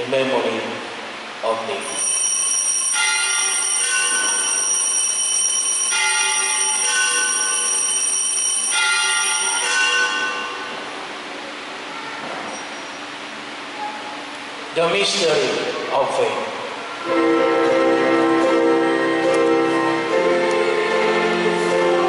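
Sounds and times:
altar bells ringing: 1.8s - 10.8s, 17.1s - 22.0s.

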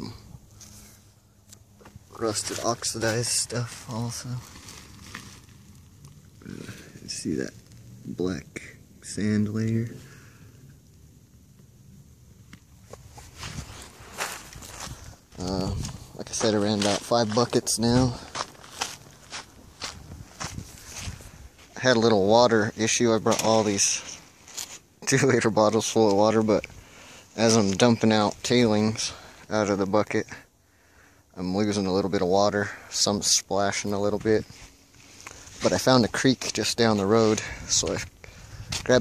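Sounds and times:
footsteps on gravelly sand: 12.9s - 22.4s.

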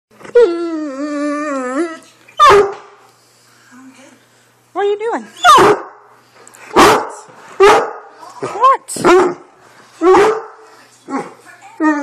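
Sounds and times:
dog whining howl: 0.2s - 2.5s
dog barking: 2.4s - 2.9s, 5.4s - 6.0s, 6.7s - 8.1s, 9.0s - 9.4s, 10.0s - 10.6s.

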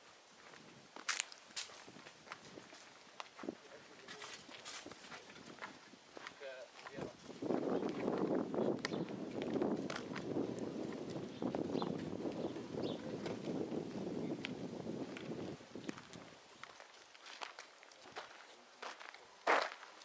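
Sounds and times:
footsteps walking: 0.4s - 12.4s, 13.1s - 20.0s.

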